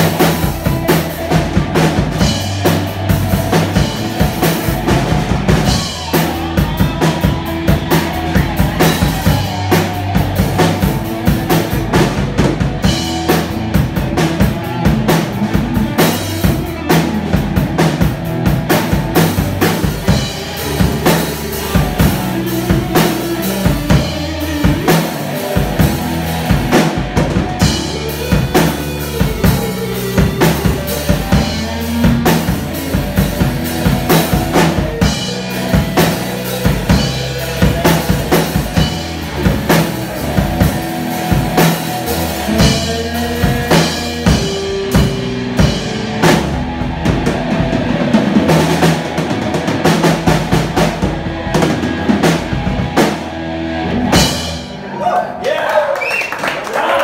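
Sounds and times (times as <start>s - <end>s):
drum kit steady beat: 0.0s - 54.8s
electric guitar: 0.0s - 55.0s
electric bass: 0.0s - 55.4s.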